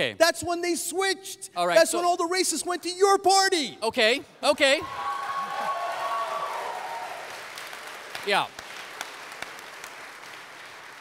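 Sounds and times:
audience applauding: 4.9 - 11.0.

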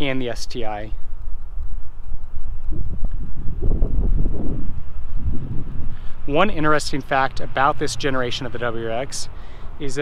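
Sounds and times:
wind rumble on microphone: 0.0 - 9.0.

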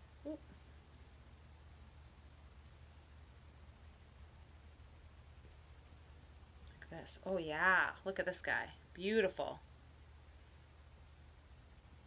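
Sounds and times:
low room hum: 0.0 - 12.0
woman murmuring: 0.2 - 0.5.

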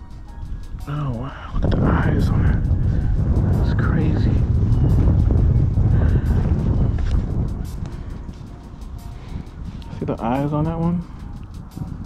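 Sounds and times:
music: 0.0 - 12.0
loud low rumble: 0.9 - 12.0.

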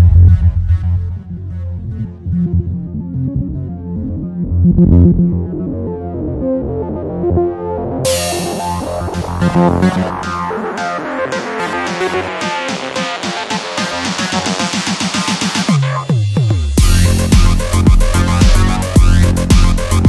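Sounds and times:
dark electronic music: 0.0 - 20.0
percussion hits: 8.1 - 20.0.

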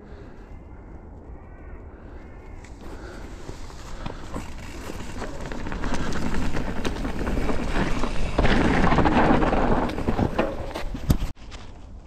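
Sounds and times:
tyres rolling over leaves and dirt: 2.8 - 12.0
bike knocks and rattles: 3.8 - 11.3.

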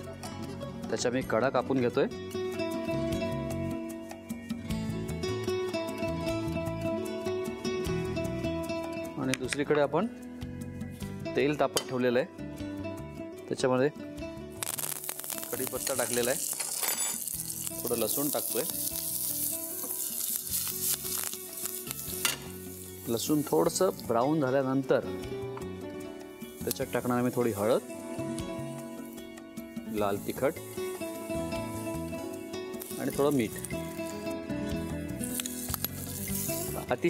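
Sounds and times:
background music: 0.0 - 37.0
garlic sizzling in hot oil: 14.6 - 25.0, 26.0 - 37.0.

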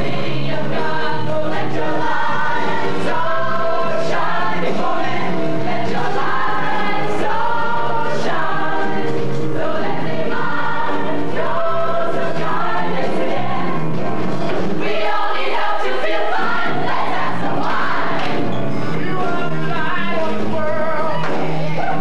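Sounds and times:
musical accompaniment: 0.0 - 22.0.

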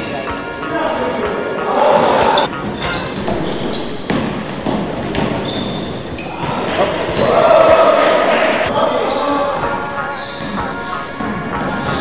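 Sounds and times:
players calling and shouting: 0.0 - 12.0
basketball bouncing on wooden floor: 2.5 - 7.4.

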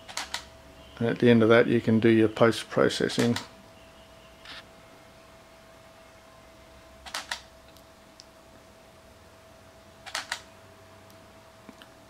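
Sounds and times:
camera shutter clicking: 0.1 - 0.5, 7.1 - 7.5, 10.1 - 10.5.

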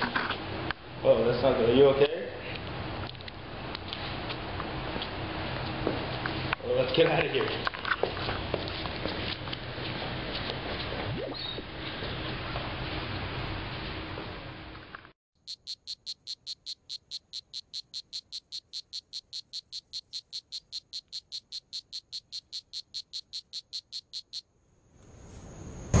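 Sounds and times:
frog chirping calls: 15.4 - 24.5.

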